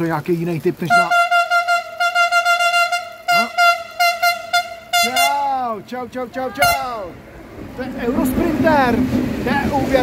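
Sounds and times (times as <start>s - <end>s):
locomotive horn blast: 0.9s - 5.8s, 6.6s - 7.1s.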